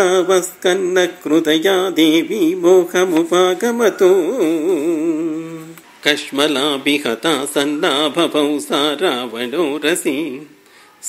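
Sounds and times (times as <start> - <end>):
man chanting unaccompanied: 0.0 - 10.6.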